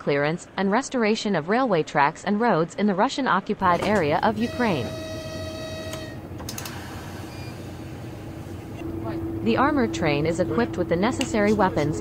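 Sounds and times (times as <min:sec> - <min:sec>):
locomotive horn: 0:03.8 - 0:06.3
engine rumble: 0:05.9 - 0:12.0.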